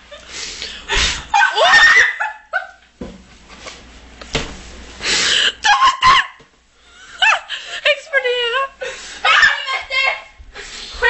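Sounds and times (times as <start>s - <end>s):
person yelping: 5.6s - 6.4s.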